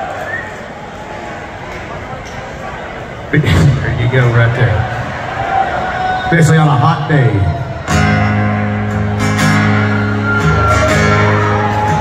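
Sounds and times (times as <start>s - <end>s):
live country band playing: 3.4s - 5.0s, 6.4s - 12.0s.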